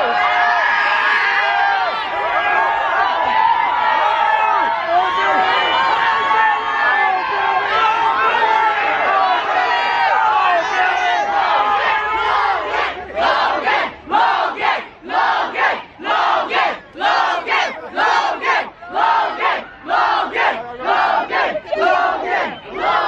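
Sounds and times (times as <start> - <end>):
crowd screaming: 0.0 - 14.6
crowd chanting in unison: 1.3 - 23.0.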